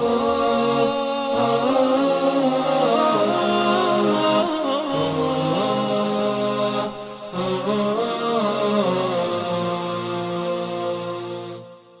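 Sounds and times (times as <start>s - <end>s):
person chanting melody: 0.0s - 11.9s.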